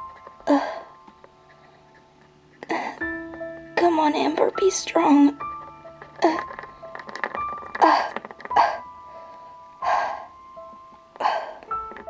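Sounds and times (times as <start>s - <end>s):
background music with held notes: 0.0s - 12.0s.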